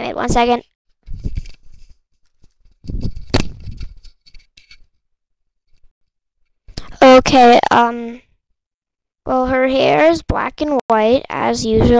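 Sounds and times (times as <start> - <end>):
rustling scraping and knocking: 1.0 - 5.0.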